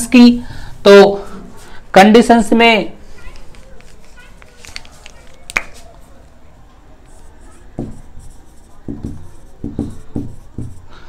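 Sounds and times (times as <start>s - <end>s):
marker writing on whiteboard: 7.0s - 11.0s.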